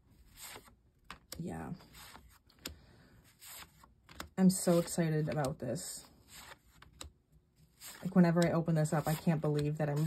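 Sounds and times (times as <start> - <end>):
cards rustling and ticking: 0.2 - 10.0.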